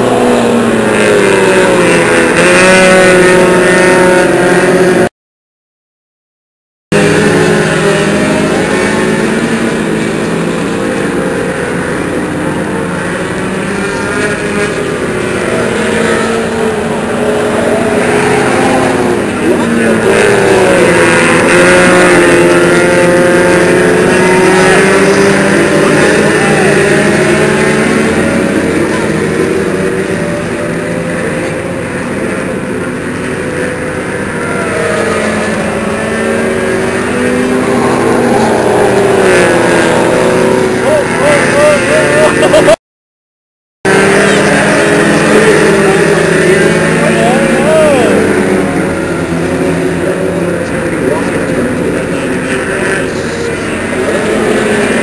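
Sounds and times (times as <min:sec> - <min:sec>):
race car engines passing: 0:00.0 - 0:05.1, 0:06.9 - 0:42.8, 0:43.9 - 0:55.0.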